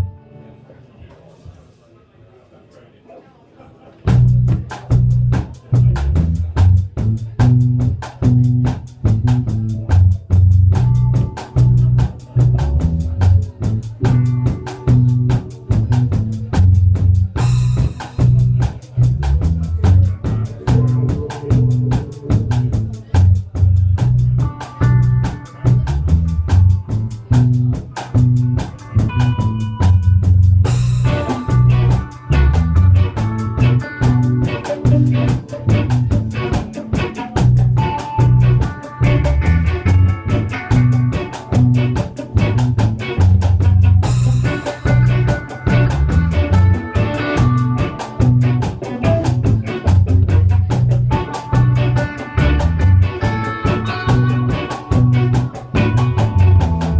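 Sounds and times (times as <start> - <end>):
rock band playing: 0.0 - 0.4, 4.0 - 56.9.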